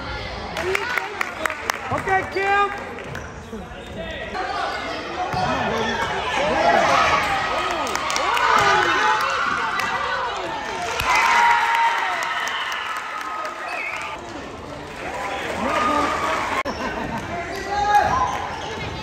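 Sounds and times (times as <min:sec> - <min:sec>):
spectators' voices: 0:00.0 - 0:19.0
sneakers squeaking: 0:03.0 - 0:06.4, 0:16.7 - 0:19.0.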